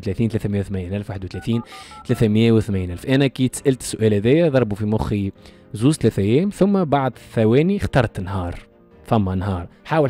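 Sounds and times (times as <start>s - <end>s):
man speaking: 1.1s - 2.6s
telephone keypad tones: 1.4s - 2.3s.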